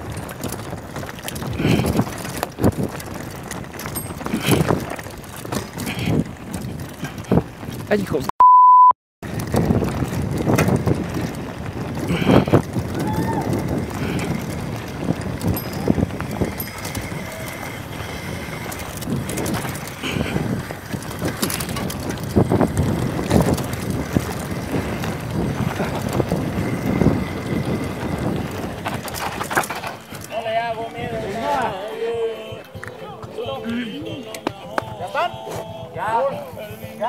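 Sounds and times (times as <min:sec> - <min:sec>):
wind buffeting microphone: 0:00.0 - 0:08.2, 0:09.2 - 0:37.0
mountain bike rattling: 0:00.0 - 0:08.3, 0:09.2 - 0:34.2
tyres rolling over dirt and stones: 0:00.0 - 0:08.3, 0:09.2 - 0:37.0.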